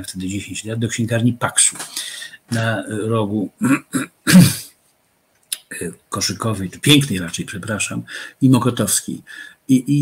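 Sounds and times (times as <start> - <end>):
man speaking: 0.0 - 4.7, 5.5 - 10.0
man clearing throat: 3.6 - 4.7.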